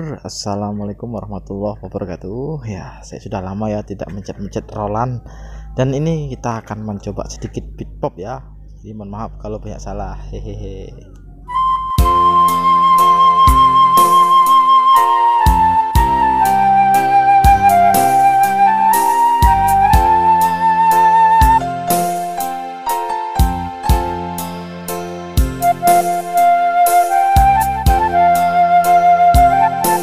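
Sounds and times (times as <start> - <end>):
electronic keyboard lead voice: 0.0 - 30.0
drum beat with bass: 12.0 - 14.3, 15.5 - 22.5, 23.4 - 24.5, 25.3 - 26.4
drum beat: 19.4 - 20.2.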